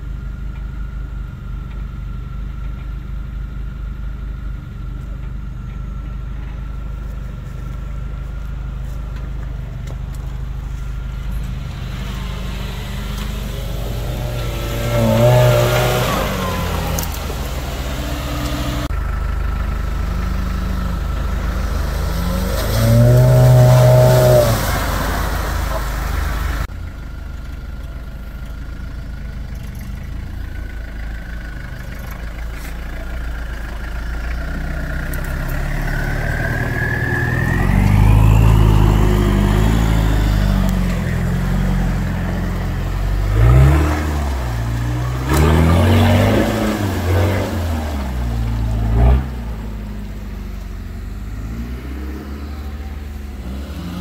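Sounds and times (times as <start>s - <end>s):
off-road engines idling and revving: 0.0s - 54.0s.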